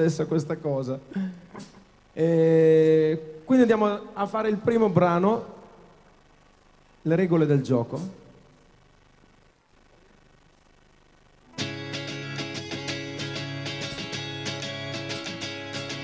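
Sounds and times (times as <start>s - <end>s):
guitar picking chord pattern: 11.5s - 16.0s.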